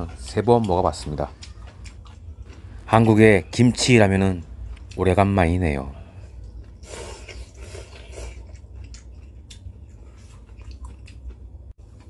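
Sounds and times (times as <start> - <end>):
person slurping noodles: 6.8 - 8.5.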